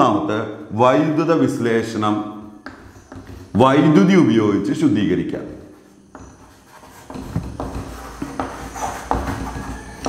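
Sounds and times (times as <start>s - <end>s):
chalk scratching on chalkboard: 1.8s - 3.6s, 5.4s - 10.0s.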